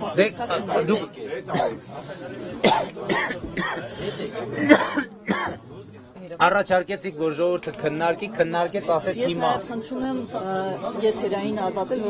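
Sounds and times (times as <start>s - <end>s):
man coughing: 1.5s - 1.9s, 2.6s - 5.7s
people talking: 7.7s - 12.0s.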